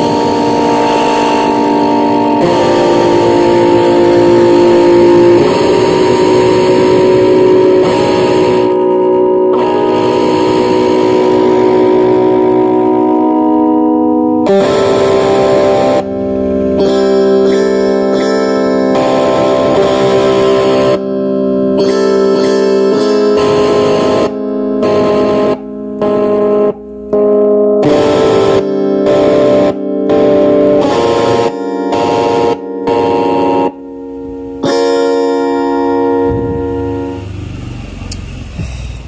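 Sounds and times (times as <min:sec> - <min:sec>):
distorted electric guitar chords: 0:00.0 - 0:39.0.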